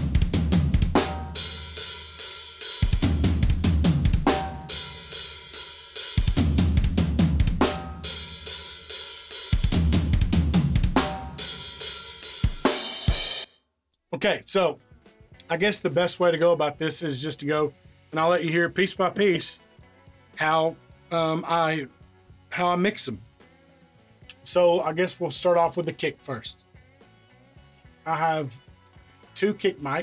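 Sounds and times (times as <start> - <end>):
acoustic drum kit groove: 0.0 - 13.5, 14.2 - 19.6, 20.4 - 23.5, 24.2 - 27.2, 28.0 - 30.0.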